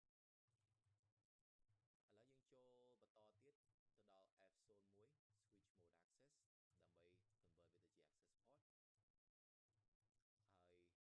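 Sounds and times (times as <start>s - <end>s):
faint voice talking: 2.1s - 8.7s, 10.5s - 11.0s.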